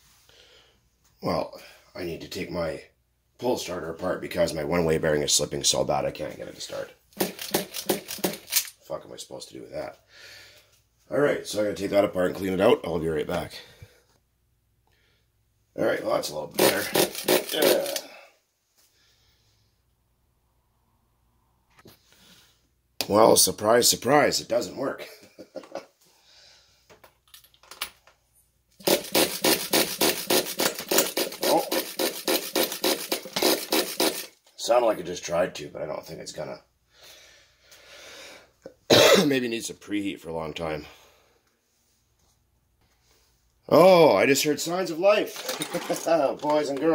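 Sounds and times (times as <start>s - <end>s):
pull starter clicking and rattling: 7.2s - 8.7s, 28.8s - 34.3s.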